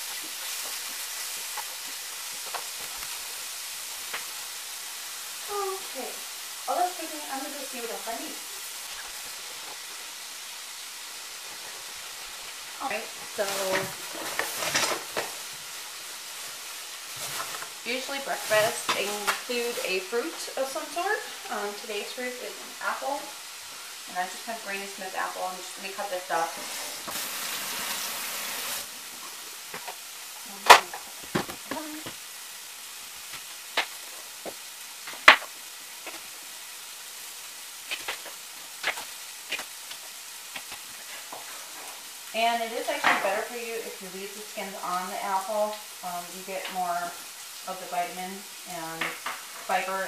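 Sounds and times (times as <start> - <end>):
chicken sizzling in a pan: 0.0 - 50.0.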